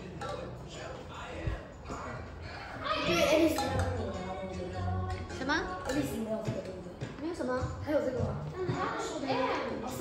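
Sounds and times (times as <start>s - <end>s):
background music: 0.0s - 10.0s
children talking and calling out: 2.4s - 10.0s.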